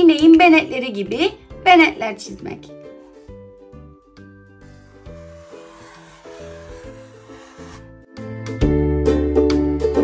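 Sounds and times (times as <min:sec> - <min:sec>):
quiet background music: 0:00.0 - 0:10.0
marker rubbing on paper plate: 0:04.8 - 0:07.9.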